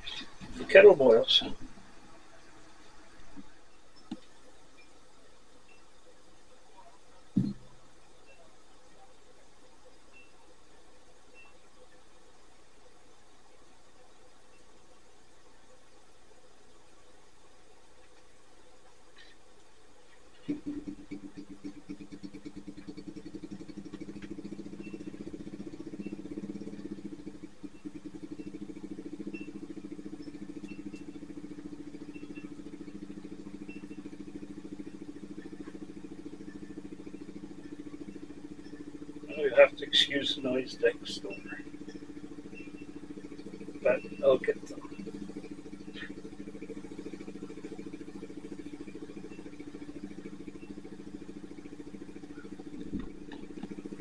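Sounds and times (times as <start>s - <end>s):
engine starting and idling: 0.0s - 3.4s, 20.4s - 54.0s.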